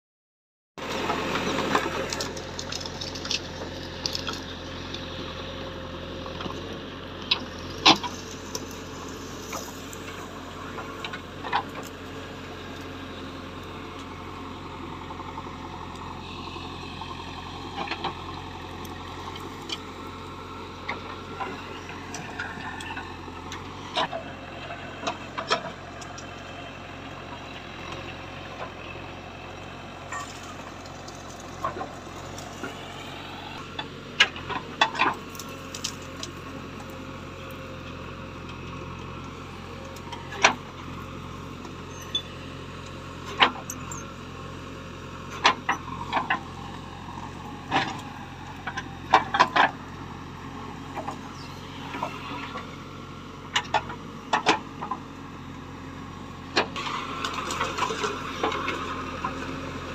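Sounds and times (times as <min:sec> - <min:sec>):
diesel engine running: 0:00.8 - 0:59.9.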